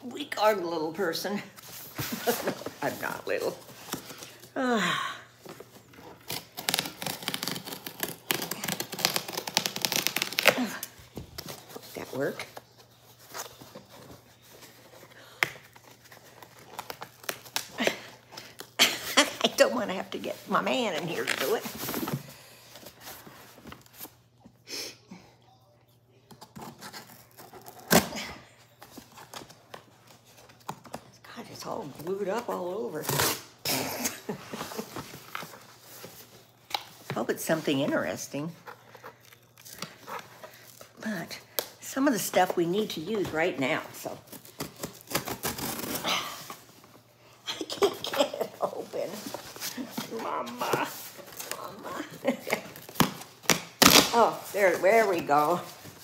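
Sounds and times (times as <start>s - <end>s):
cardboard ripping: 5.8s - 14.5s, 43.2s - 46.7s, 47.8s - 56.0s.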